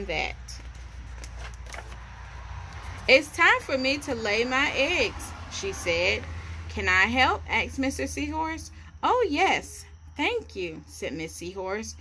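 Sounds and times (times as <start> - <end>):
book page turning: 0.4 - 2.4.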